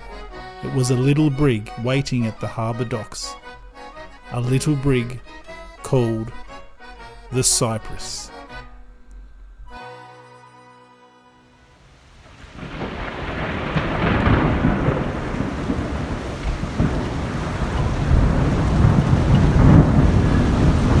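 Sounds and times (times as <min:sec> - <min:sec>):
rain: 0:11.6 - 0:21.0
rolling thunder: 0:12.1 - 0:21.0.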